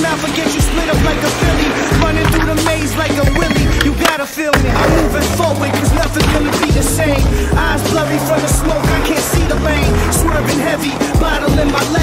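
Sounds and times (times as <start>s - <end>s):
hip-hop instrumental: 0.0s - 12.0s
skateboard clacks: 0.0s - 12.0s
skateboard wheels rolling on concrete: 0.0s - 12.0s.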